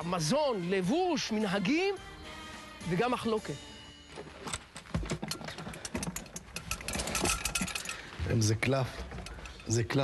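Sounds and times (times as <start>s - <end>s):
handling clicks and rattles: 4.2s - 10.0s.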